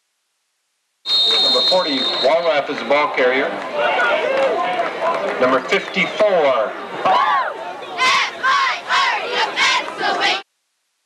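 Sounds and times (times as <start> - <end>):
referee's whistle blast: 1.1 - 2.9
voices: 1.3 - 10.4.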